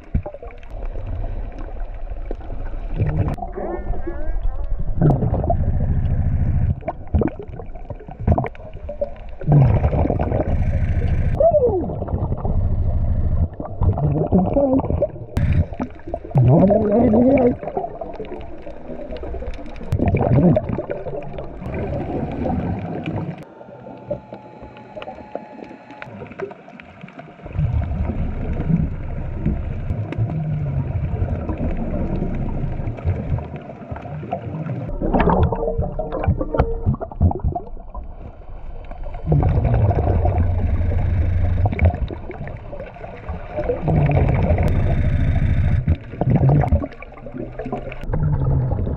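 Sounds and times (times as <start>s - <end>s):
underwater breathing bubbles: 5.0s - 12.6s, 13.4s - 26.8s, 27.4s - 48.9s
squeaky regulator tones: 23.4s - 26.1s, 39.5s - 42.1s, 44.1s - 46.0s.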